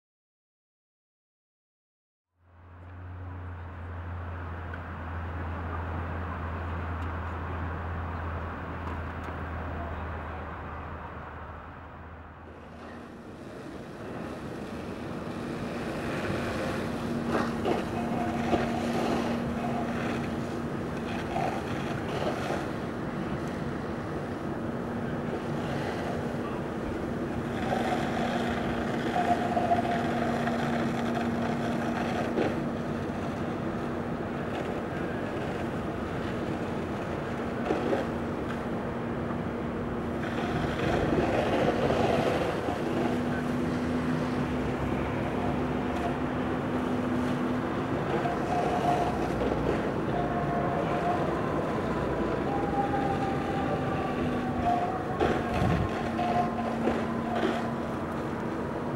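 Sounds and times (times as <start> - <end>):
fire engine pump humming: 2.4 - 58.9.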